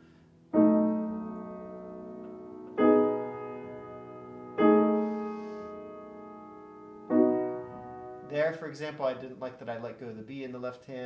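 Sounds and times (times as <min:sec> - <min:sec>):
grand piano chords ringing: 0:00.0 - 0:09.5.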